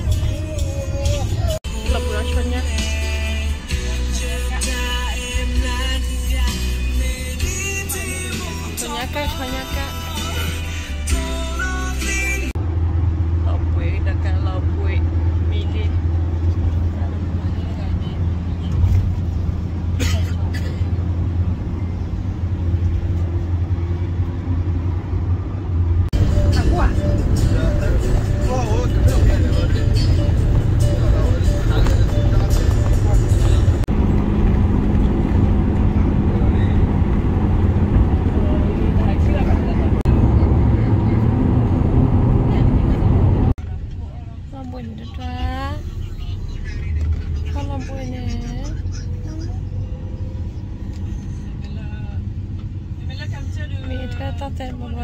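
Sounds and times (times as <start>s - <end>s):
road noise: 0.0s - 55.0s
van engine rumble: 0.0s - 55.0s.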